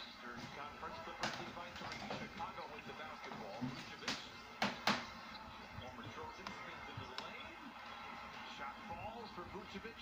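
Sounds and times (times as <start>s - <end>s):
commentator's voice on tv: 0.0s - 10.0s
arena crowd sound: 0.2s - 10.0s.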